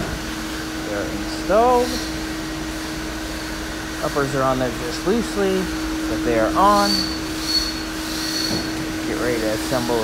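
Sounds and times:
mechanical whirring hum: 0.0 - 10.0.

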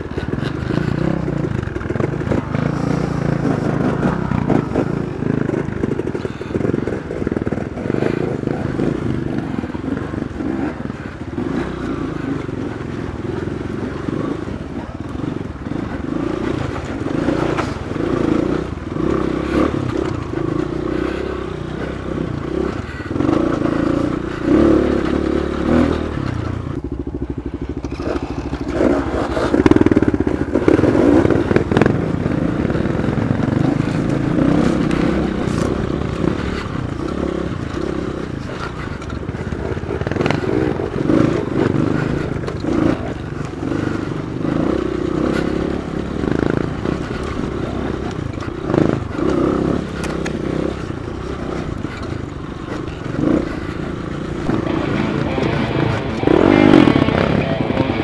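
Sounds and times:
bike knocking and rattling: 0.0 - 58.0
dirt bike engine revving: 0.0 - 58.0.

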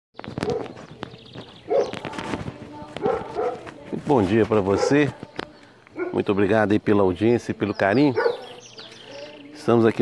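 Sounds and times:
dog barking: 0.4 - 0.7, 1.7 - 2.0, 3.0 - 3.7, 4.7 - 5.2, 6.0 - 6.3, 8.1 - 8.6.

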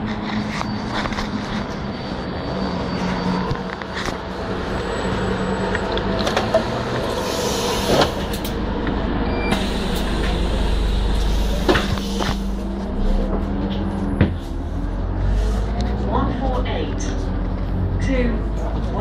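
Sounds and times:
bus engine running: 0.0 - 19.0.

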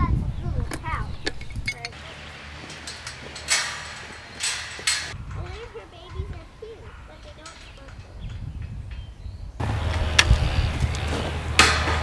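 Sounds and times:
knocks on metal gate: 2.7 - 5.6, 11.6 - 12.0.

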